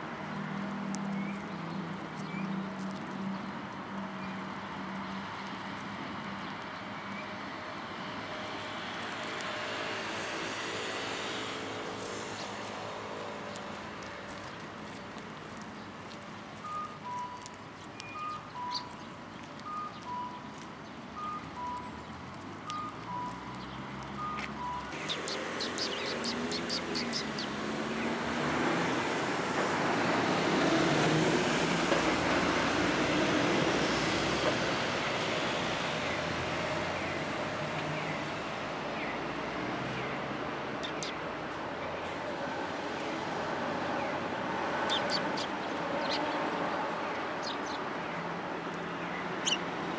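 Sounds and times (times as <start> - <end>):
birds pecking seed ticks: 0.0 - 49.9
vehicle passing: 7.8 - 15.2, 21.1 - 49.9.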